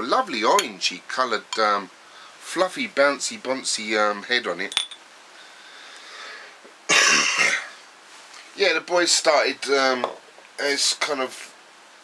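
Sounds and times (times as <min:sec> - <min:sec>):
man coughing: 0:06.9 - 0:07.8.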